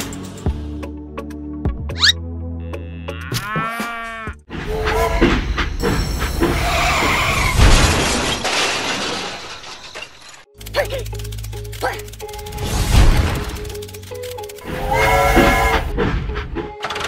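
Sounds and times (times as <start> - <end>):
loud crash and clatter: 5.2 - 10.5.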